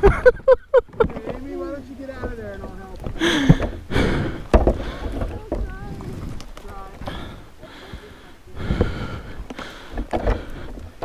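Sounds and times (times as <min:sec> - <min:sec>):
branches rustling and cracking: 0:00.9 - 0:11.0
person breathing: 0:03.2 - 0:05.4, 0:07.0 - 0:11.0.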